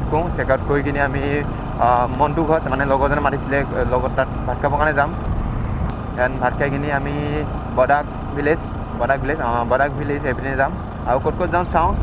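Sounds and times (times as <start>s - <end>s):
motorcycle running: 0.0s - 12.0s
road and wind noise: 0.0s - 12.0s.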